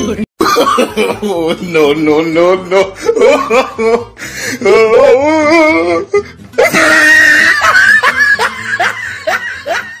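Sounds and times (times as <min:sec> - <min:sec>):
laughter in rising bursts: 0:07.0 - 0:10.0.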